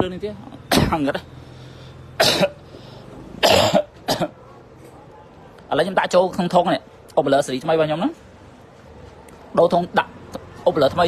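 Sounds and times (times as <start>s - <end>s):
man coughing: 0.7s - 1.2s, 2.2s - 2.6s, 3.4s - 4.4s.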